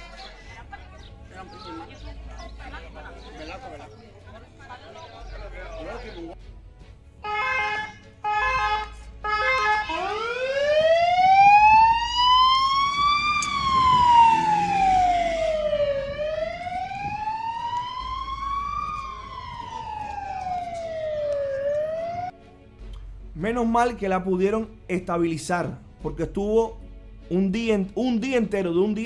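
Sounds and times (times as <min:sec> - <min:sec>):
ambulance siren: 0:07.2 - 0:22.4.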